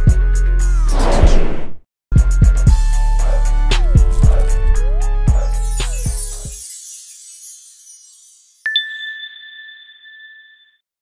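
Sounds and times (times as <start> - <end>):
bright ding chime: 6.0 - 10.8.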